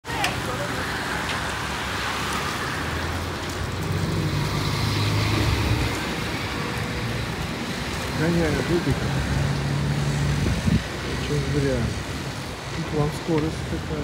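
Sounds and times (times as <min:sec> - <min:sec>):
street traffic: 0:00.0 - 0:14.0.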